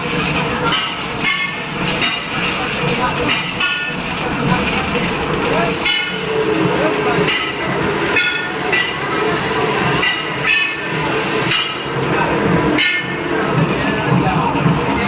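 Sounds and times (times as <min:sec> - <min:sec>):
candy machine running: 0:00.0 - 0:15.0
people talking: 0:01.9 - 0:09.4, 0:10.0 - 0:15.0.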